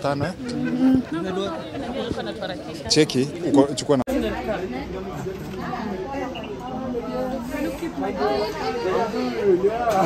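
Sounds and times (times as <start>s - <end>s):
people talking at once: 0.0s - 10.0s.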